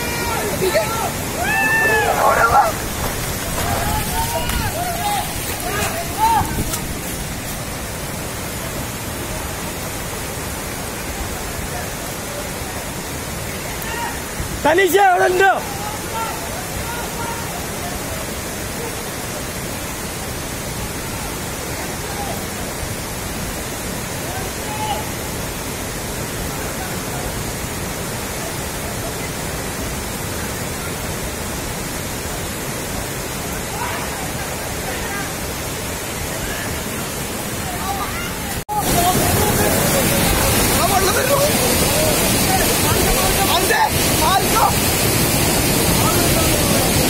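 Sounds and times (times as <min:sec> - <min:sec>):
people's voices: 0:00.0 - 0:07.6, 0:33.7 - 0:47.0
floodwater rushing: 0:00.0 - 0:47.0.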